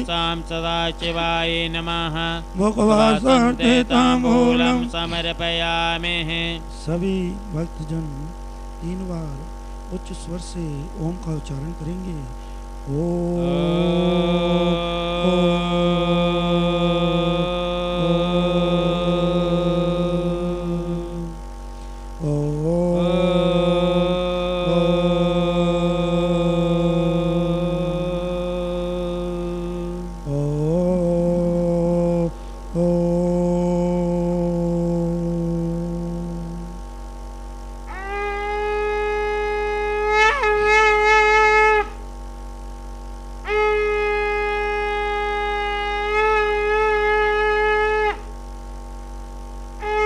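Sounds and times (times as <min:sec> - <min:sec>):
man chanting mantras: 0:00.0 - 0:21.4, 0:22.2 - 0:36.8.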